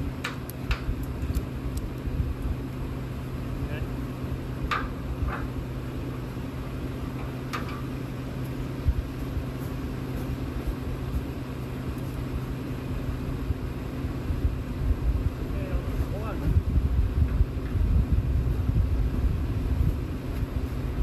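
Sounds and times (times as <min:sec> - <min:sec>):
engine idling: 0:00.0 - 0:21.0.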